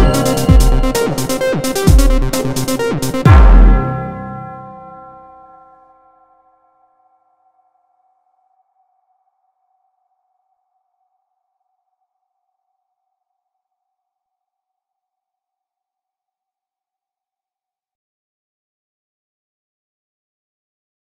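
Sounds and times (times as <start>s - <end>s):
held synth tones: 0.0s - 5.2s.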